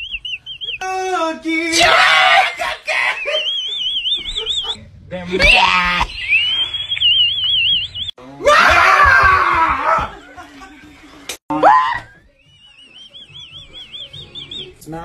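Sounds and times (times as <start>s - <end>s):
man yelling: 0.8s - 3.4s
people screaming and shouting: 1.6s - 3.5s, 5.3s - 6.4s, 8.2s - 10.4s, 11.5s - 12.3s.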